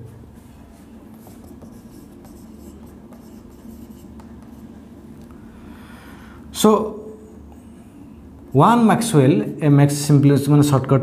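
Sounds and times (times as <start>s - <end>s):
low steady hum: 0.0s - 11.0s
marker writing on whiteboard: 0.6s - 4.8s.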